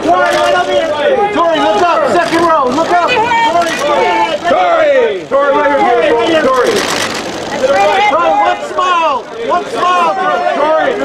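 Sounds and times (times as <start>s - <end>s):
people shouting over each other: 0.0s - 6.8s, 7.5s - 11.0s.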